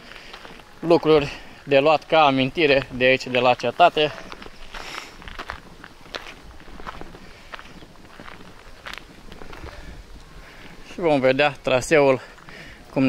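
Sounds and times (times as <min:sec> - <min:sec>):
footsteps on gravel and cobblestones: 0:00.0 - 0:13.0.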